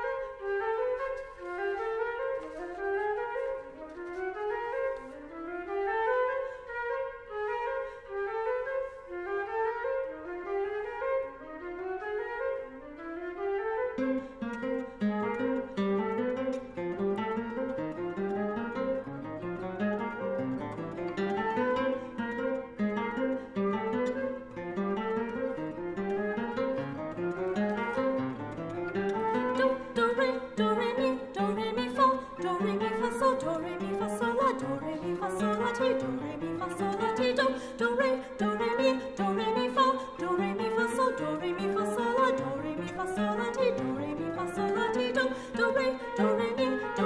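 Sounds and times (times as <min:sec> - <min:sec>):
classical guitar playing: 0:00.0 - 0:47.0.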